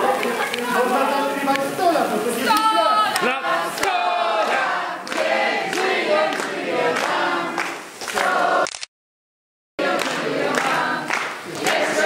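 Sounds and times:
hand-clapping: 0.1 - 0.7, 1.5 - 1.7, 2.5 - 8.5, 9.8 - 12.0
group of people singing: 2.3 - 8.7, 9.8 - 12.0.

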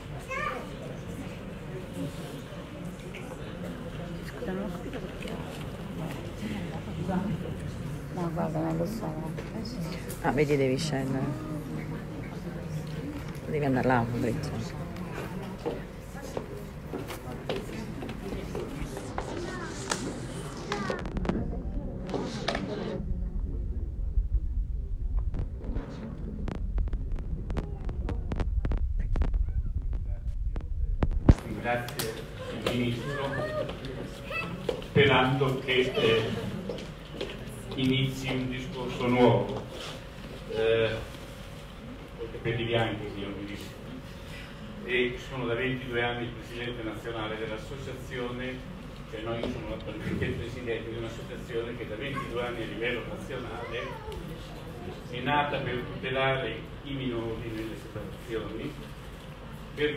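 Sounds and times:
murmur of people talking: 0.0 - 59.9
steady low rumble: 15.8 - 32.4.

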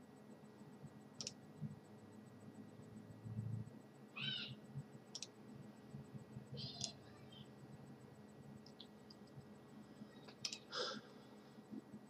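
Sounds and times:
computer mouse clicks: 1.2 - 1.4, 5.1 - 5.4, 6.8 - 7.0, 10.3 - 10.7.

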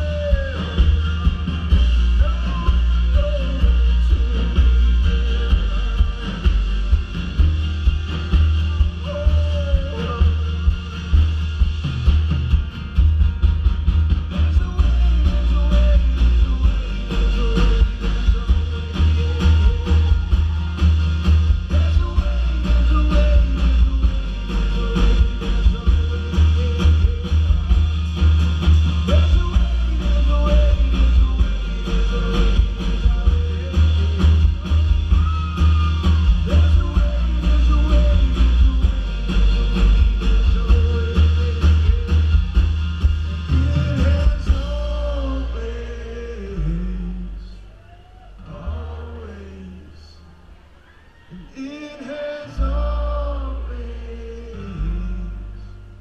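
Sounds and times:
person singing: 0.0 - 11.3, 14.2 - 50.4, 51.3 - 56.0
booming bass: 0.0 - 47.4
live band playing amplified music: 0.0 - 56.0.

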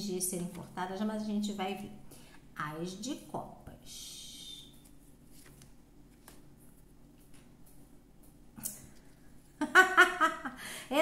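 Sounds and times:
woman laughing: 9.6 - 11.0.

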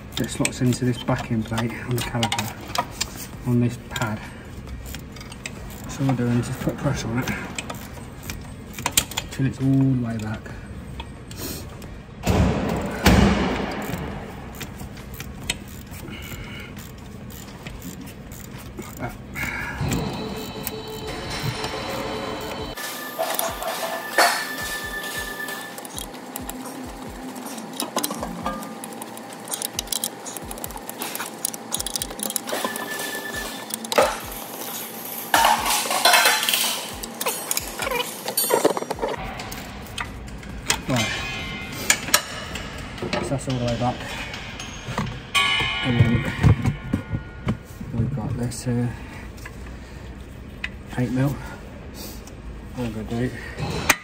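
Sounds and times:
sharp metallic knocks: 39.2 - 47.9.

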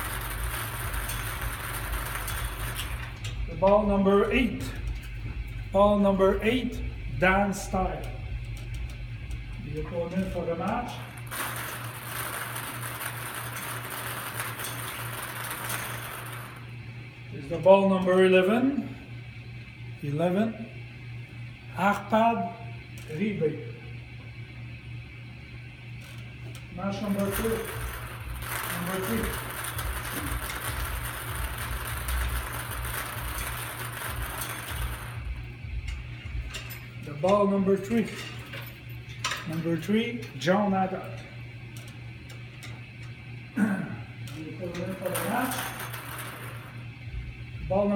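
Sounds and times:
balls rattling in a spinning wire cage: 0.0 - 5.2, 7.4 - 16.7, 26.0 - 41.2, 44.3 - 47.0.

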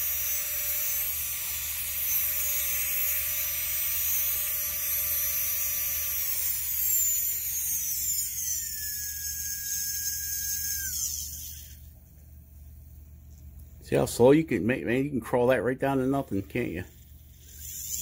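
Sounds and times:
carving handpiece high whine: 0.0 - 12.0, 15.9 - 18.0.

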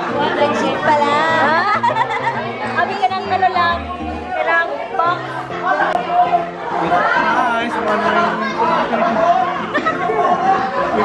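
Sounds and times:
background music with held notes: 0.0 - 11.0
people chattering: 0.0 - 11.0.

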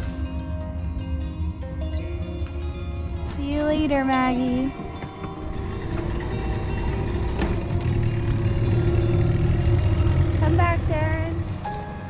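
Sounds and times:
background music: 0.0 - 12.0
outboard motor rumbling: 3.6 - 12.0.

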